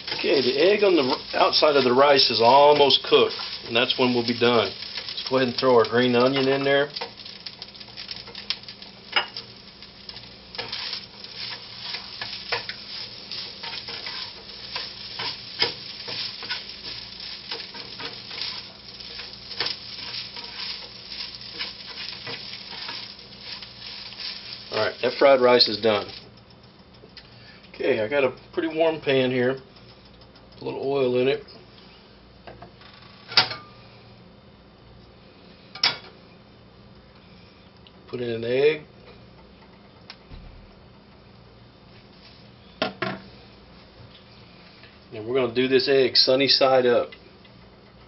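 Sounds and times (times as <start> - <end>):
rice sizzling in a frying pan: 0.0 - 26.5, 41.8 - 47.9
low steady hum: 0.0 - 48.0
spatula scraping and tapping pan: 10.1 - 24.8.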